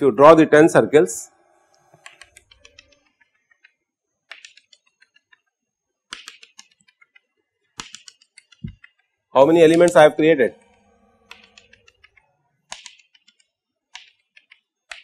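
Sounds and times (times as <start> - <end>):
chalk tapping on blackboard: 4.3 - 5.5, 6.1 - 7.2, 7.8 - 10.0.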